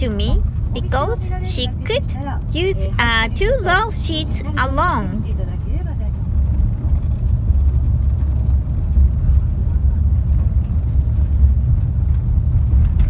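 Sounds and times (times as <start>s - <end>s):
coach road rumble: 0.0s - 13.0s.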